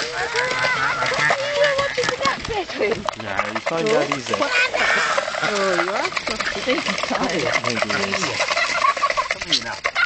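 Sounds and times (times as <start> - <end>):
ducks calling: 0.0 - 10.0.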